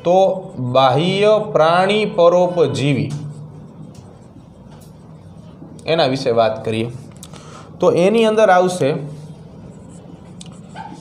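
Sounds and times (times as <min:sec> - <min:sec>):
marker squeaking on whiteboard: 0:02.0 - 0:05.7, 0:09.6 - 0:11.0.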